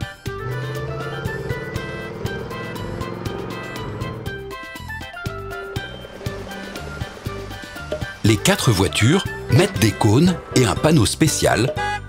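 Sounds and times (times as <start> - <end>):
cartoon car engine driving by: 0.0 - 10.5.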